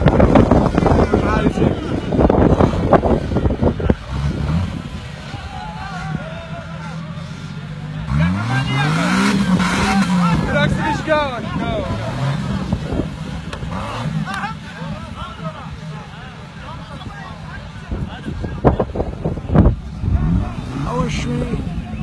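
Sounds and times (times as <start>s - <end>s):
engine revving under load: 0.0s - 6.2s, 6.9s - 15.1s, 19.2s - 22.0s
voices: 0.0s - 22.0s.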